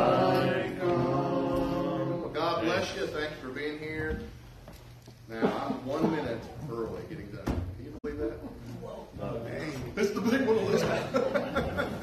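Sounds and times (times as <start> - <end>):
voices singing a hymn: 0.0 - 3.2.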